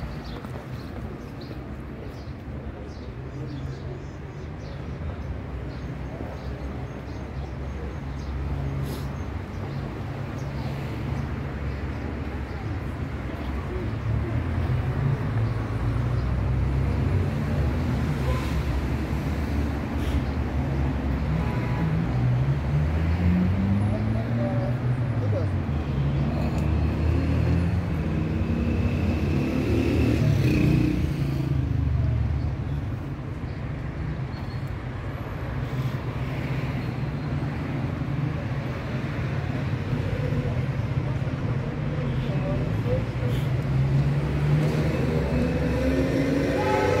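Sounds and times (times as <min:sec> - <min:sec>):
low street rumble: 0:00.0 - 0:47.0.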